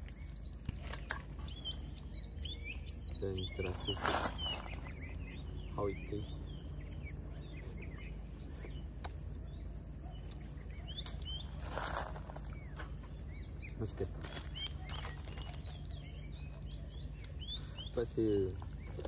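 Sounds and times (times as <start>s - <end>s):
low outdoor rumble: 0.0s - 19.0s
small birds chirping: 0.0s - 19.0s.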